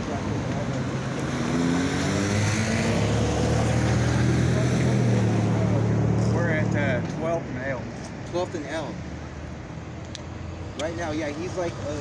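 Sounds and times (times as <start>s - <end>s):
vehicle engine accelerating: 0.0s - 7.2s.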